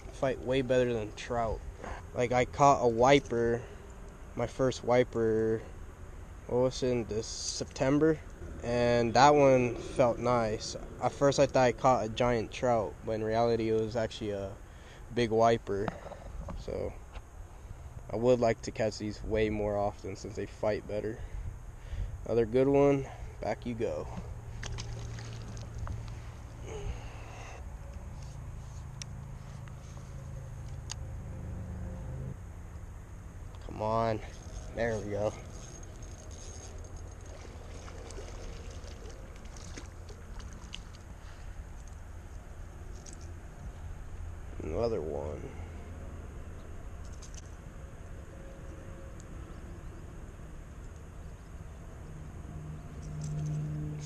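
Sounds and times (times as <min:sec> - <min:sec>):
steady low hum: 0:00.0 - 0:54.0
rustle of handling: 0:27.7 - 0:30.9, 0:33.5 - 0:43.9.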